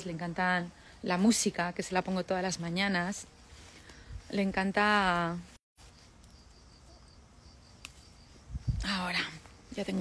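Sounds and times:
crickets chirping: 0:05.8 - 0:10.0.

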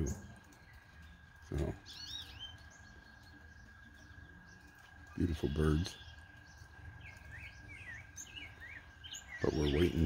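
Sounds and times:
songbird chirping: 0:00.0 - 0:10.0.

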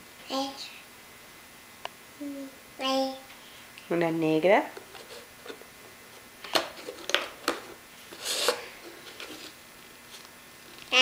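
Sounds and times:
tub scraping on countertop: 0:06.6 - 0:10.2.

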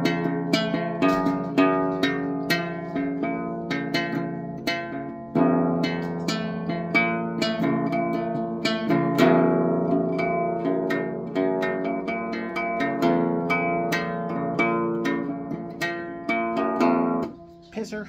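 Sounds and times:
classical guitar plucking: 0:00.0 - 0:18.0.

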